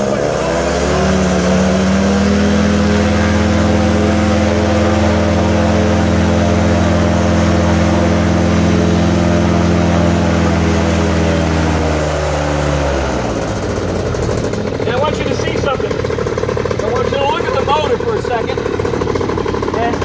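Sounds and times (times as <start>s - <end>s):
paramotor engine and propeller: 0.0s - 20.0s.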